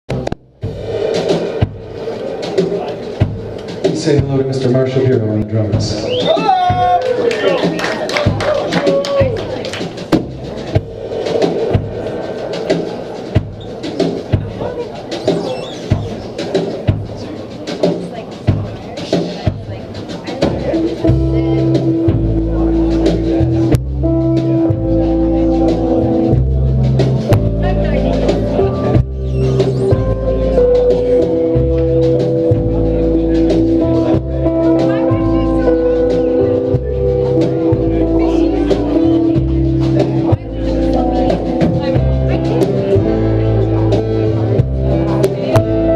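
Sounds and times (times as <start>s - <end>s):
sharp drum hits: 0.1s - 4.7s, 10.0s - 17.2s
drum hits: 0.1s - 45.9s
voices: 1.4s - 45.9s
upright bass: 20.4s - 45.9s
sustained low instrument notes: 20.8s - 45.9s.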